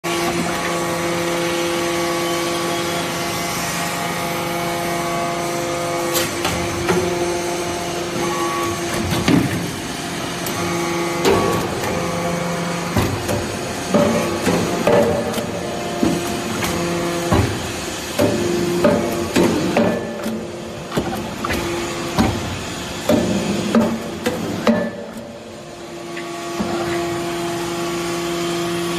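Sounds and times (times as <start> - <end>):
hydraulic drive hum: 0.1 - 28.9.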